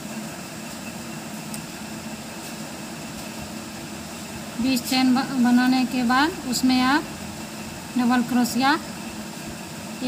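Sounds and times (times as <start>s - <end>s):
steady hum and hiss: 0.0s - 10.0s.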